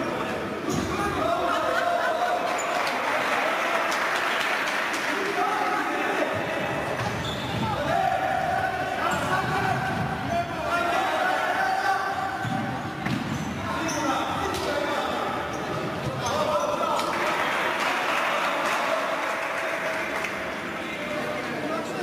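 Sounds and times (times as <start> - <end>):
players shouting: 0.0 - 20.4.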